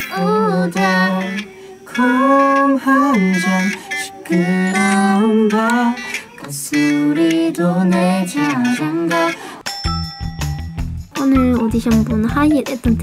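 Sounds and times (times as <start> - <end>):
person singing a melody: 0.0 - 9.6
acoustic guitar accompaniment: 0.0 - 9.7.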